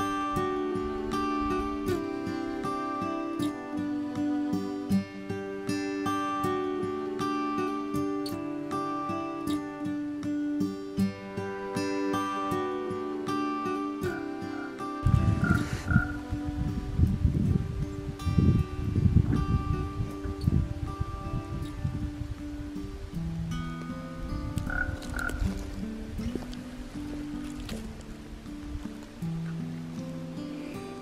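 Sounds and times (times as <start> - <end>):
acoustic guitar music: 0.0 - 31.0
raven croaking: 14.0 - 16.4, 24.6 - 29.6.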